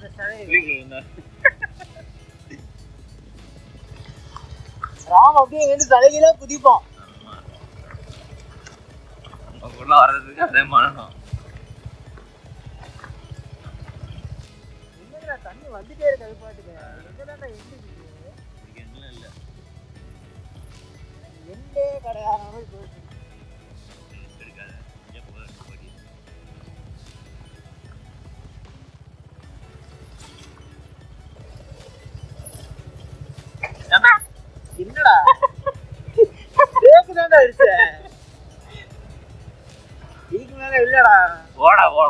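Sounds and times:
motorcycle engine running: 0.0s - 42.0s.

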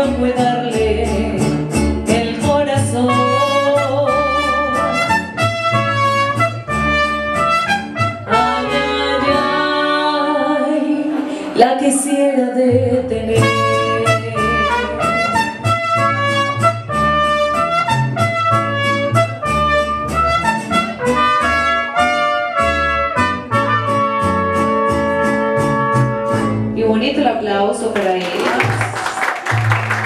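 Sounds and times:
mariachi band playing: 0.0s - 30.0s.

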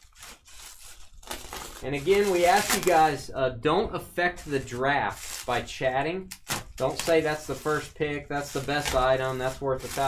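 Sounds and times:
bubble wrap crinkling: 0.0s - 3.2s, 4.3s - 5.7s, 6.3s - 10.0s
person speaking: 1.8s - 10.0s.

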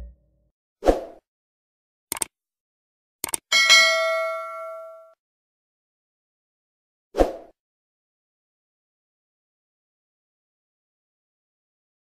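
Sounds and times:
mouse clicks: 2.1s - 2.3s, 3.2s - 3.4s
bright bell ding: 3.5s - 5.1s.

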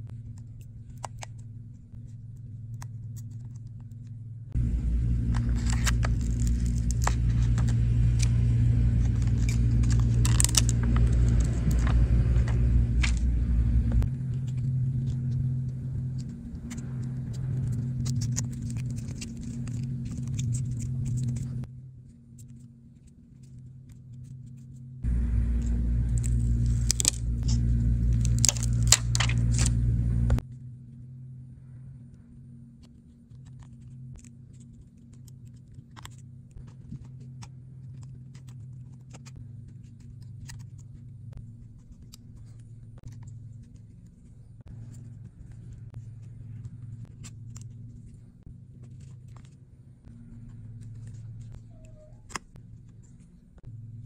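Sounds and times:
steady low hum: 0.0s - 54.0s
small clicks and scrapes of phone parts: 0.1s - 4.2s, 5.3s - 13.3s, 14.2s - 24.9s, 32.8s - 53.7s.

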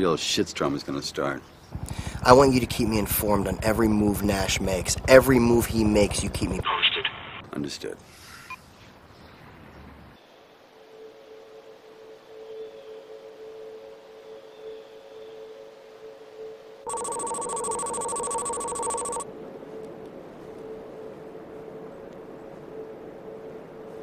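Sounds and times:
trilling electronic ring: 16.9s - 19.2s
low steady electronic tone: 16.9s - 21.8s.

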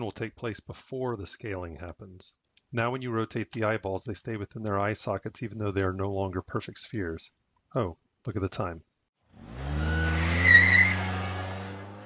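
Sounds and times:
car engine: 9.2s - 12.0s
tyre screech: 9.6s - 12.0s.

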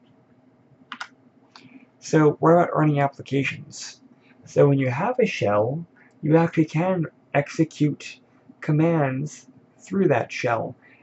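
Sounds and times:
faint room noise: 0.0s - 11.0s
computer keyboard clicks: 0.9s - 1.1s.

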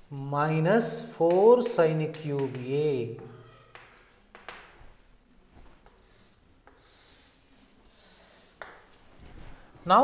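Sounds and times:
chalk tap: 1.2s - 4.7s, 6.6s - 7.3s, 8.1s - 9.0s
chalk scratching on chalkboard: 6.1s - 8.7s.

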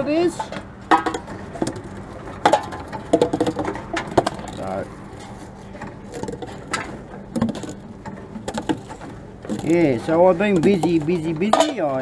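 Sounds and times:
cans and bottles clicking and knocking: 0.3s - 12.0s.

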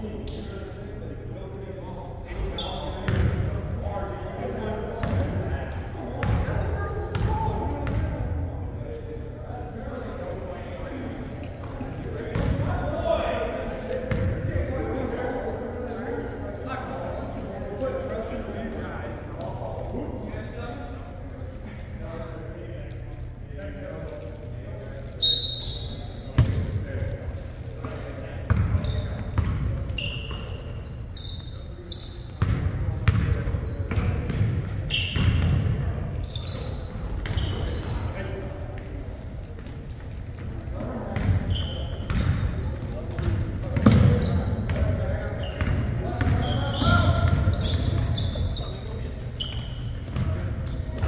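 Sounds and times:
sneaker squeaks: 2.3s - 3.6s, 4.6s - 5.4s, 6.2s - 8.1s, 11.4s - 16.4s, 18.2s - 19.6s, 23.0s - 51.0s.

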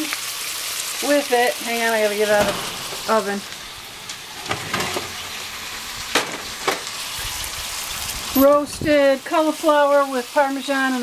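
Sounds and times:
steaks sizzling in a pan: 0.0s - 11.0s
oven door knocks: 2.2s - 5.2s.

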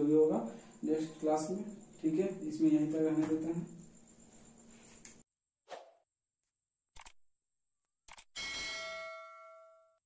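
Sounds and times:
notification bell ding: 8.4s - 10.0s.

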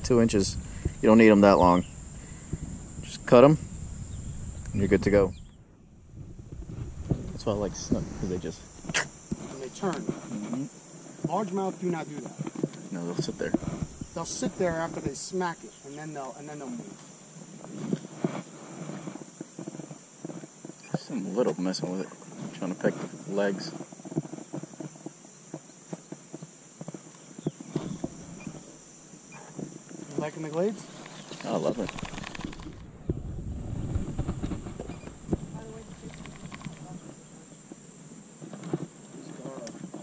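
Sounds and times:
wind rumble on microphone: 0.0s - 10.3s, 13.2s - 15.2s, 31.6s - 37.2s
high insect buzz: 0.0s - 40.0s.

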